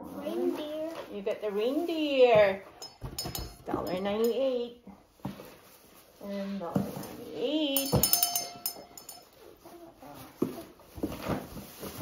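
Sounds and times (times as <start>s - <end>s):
small bell ringing: 2.8s - 4.5s, 7.7s - 9.5s.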